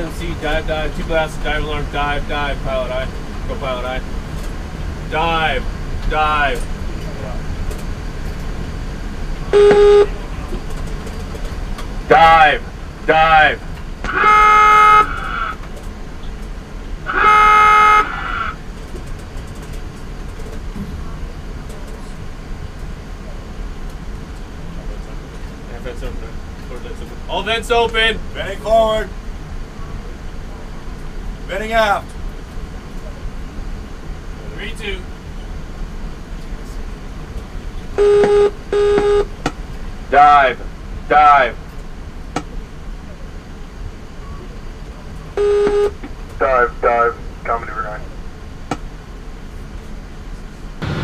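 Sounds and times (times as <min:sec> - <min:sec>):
steady low hum: 0:00.0 - 0:51.0
submarine diving alarm blasts: 0:09.5 - 0:10.2, 0:12.1 - 0:15.6, 0:17.0 - 0:18.6, 0:38.0 - 0:39.4, 0:45.3 - 0:47.1.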